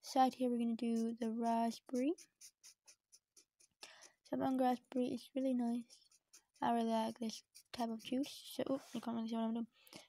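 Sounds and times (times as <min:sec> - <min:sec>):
felt-tip marker scribbling on paper: 0:00.0 - 0:09.4.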